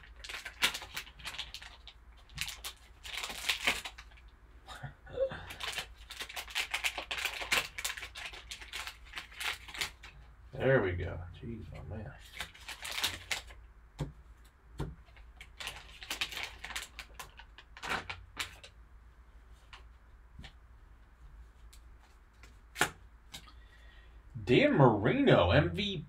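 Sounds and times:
foil wrapper crinkling: 0:00.0 - 0:04.3, 0:05.5 - 0:10.3, 0:12.2 - 0:13.6, 0:15.0 - 0:18.8.

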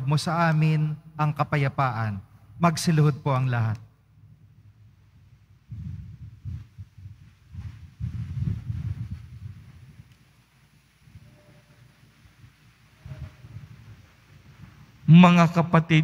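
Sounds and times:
muffled thumps and rumbling: 0:05.6 - 0:10.2.

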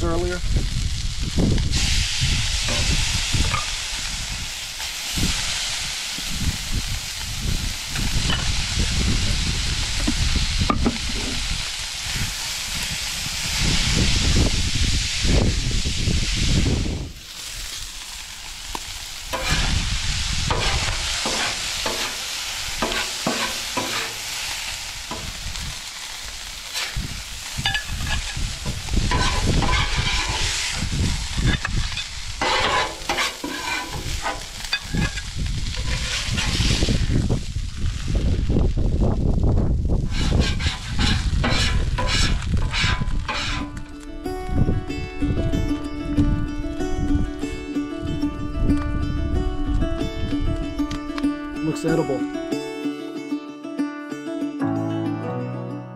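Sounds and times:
food sizzling on griddle: 0:00.0 - 0:52.6
metal spatula scraping griddle: 0:19.3 - 0:19.8, 0:20.5 - 0:25.4, 0:26.6 - 0:37.0, 0:40.0 - 0:43.8.

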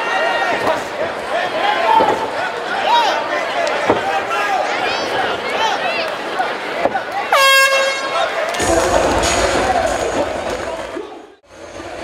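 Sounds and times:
crowd shouting: 0:00.0 - 0:11.4
air horn blast: 0:07.3 - 0:09.4.

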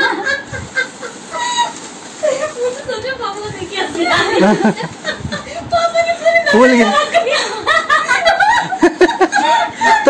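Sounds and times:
woman giggling: 0:04.1 - 0:05.7, 0:06.3 - 0:10.0.

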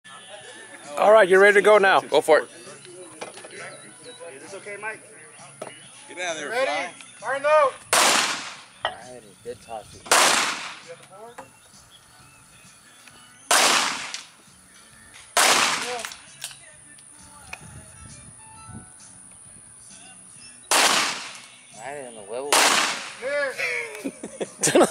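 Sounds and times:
pistol shots: 0:07.9 - 0:08.6, 0:10.1 - 0:10.9, 0:13.5 - 0:14.3, 0:15.3 - 0:16.2, 0:20.7 - 0:21.5, 0:22.5 - 0:23.2.

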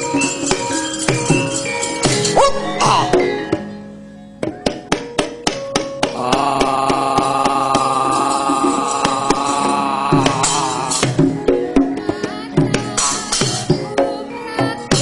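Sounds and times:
gamelan music: 0:00.0 - 0:15.0
sharp wooden knocks: 0:04.4 - 0:07.7
drum: 0:04.4 - 0:12.0.

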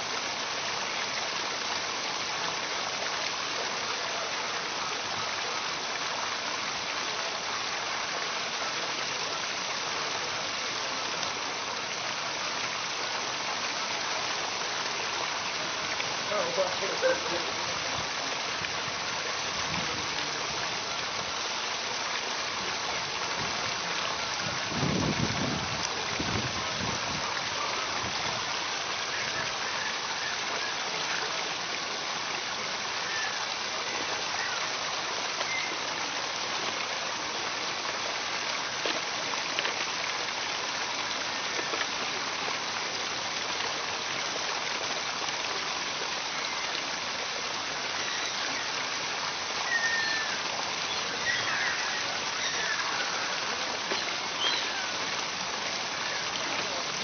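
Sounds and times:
waterfall splashing into pool: 0:00.0 - 0:57.0.

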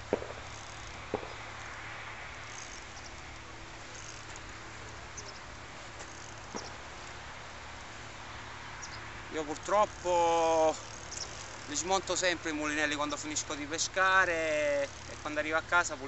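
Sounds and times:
background hiss: 0:00.0 - 0:16.0
fishing reel clicks: 0:02.3 - 0:04.5, 0:06.0 - 0:06.8, 0:09.5 - 0:15.6.

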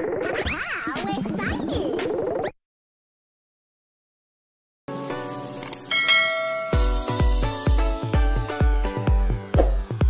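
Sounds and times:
bright bell-like chime: 0:05.9 - 0:07.4
held chord: 0:05.9 - 0:09.2
electronic dance beat: 0:06.7 - 0:10.0.

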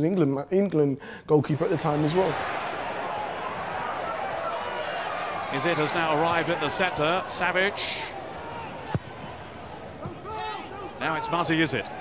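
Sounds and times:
stadium crowd noise: 0:01.4 - 0:12.0
football kick thud: 0:08.9 - 0:09.1.

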